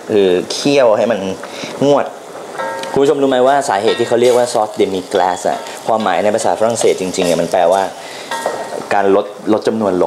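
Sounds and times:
man talking: 0.0s - 2.2s, 2.8s - 8.2s, 8.8s - 10.0s
wooden spatula stirring in a pot: 2.3s - 9.0s.

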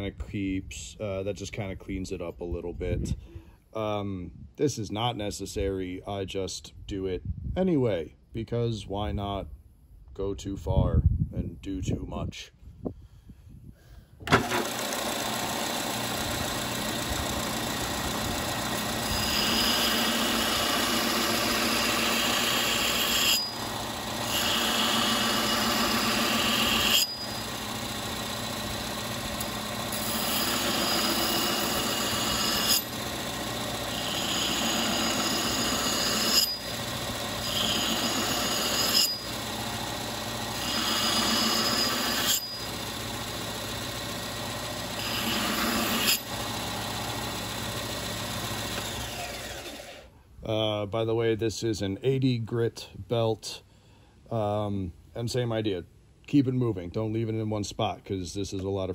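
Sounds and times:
belt sander motor running: 14.3s - 50.1s.

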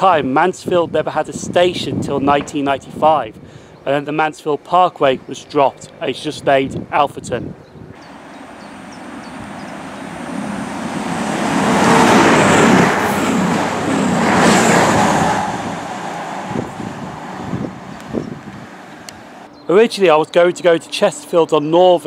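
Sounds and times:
train passing at speed: 8.0s - 19.5s.

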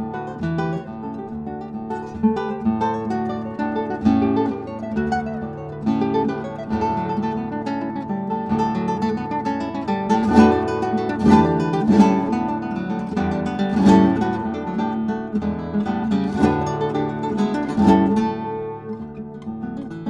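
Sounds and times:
classical guitar playing: 0.0s - 20.0s.

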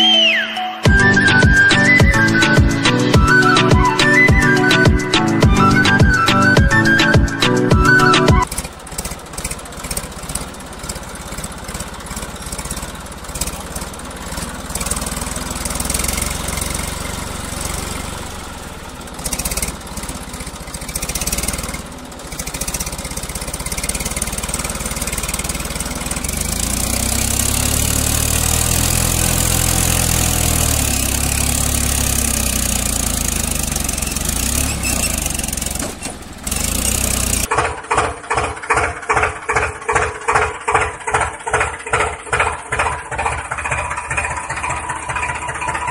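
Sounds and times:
engine chugging: 0.8s - 45.9s
engine running: 0.9s - 45.9s.

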